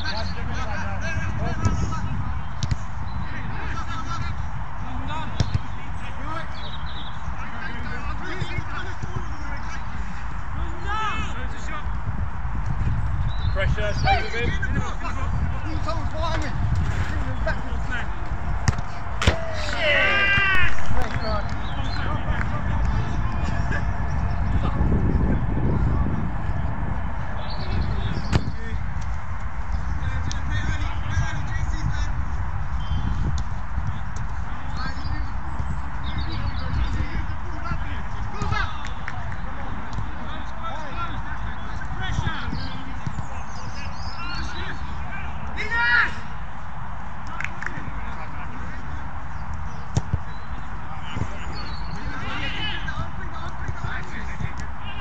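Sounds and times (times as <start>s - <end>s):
wind rumble on microphone: 0.0s - 55.0s
ball being kicked: 2.6s - 2.9s, 5.4s - 5.7s, 18.6s - 21.6s, 49.9s - 50.3s
players shouting: 13.7s - 28.8s, 36.8s - 49.4s, 50.6s - 55.0s.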